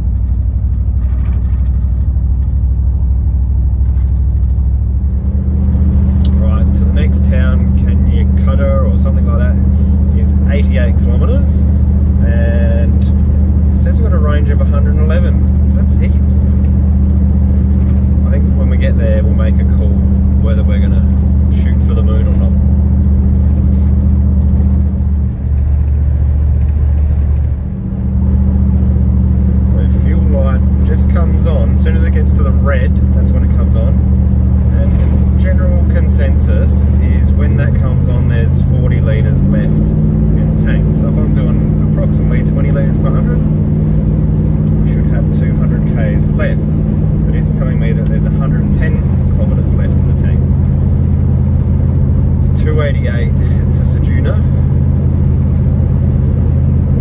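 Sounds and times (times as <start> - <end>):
engine and road drone: 0.0 - 57.0.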